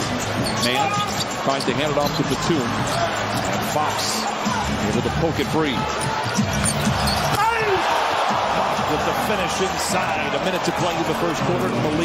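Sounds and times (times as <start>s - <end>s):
arena crowd noise: 0.0s - 12.0s
sneaker squeak: 0.2s - 3.6s, 5.9s - 7.4s.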